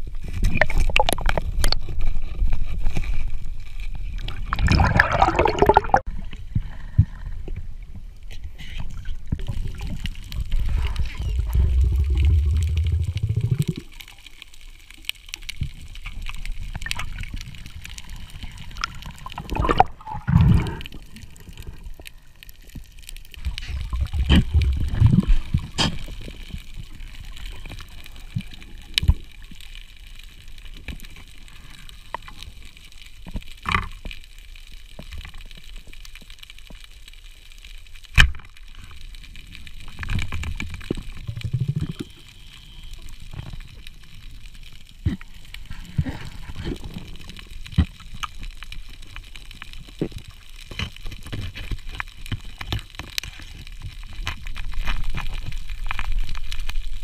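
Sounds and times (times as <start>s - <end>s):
exhaled bubbles gurgling underwater: 0.1s - 1.9s, 4.2s - 6.2s, 8.9s - 14.4s, 15.2s - 30.0s, 39.3s - 51.2s.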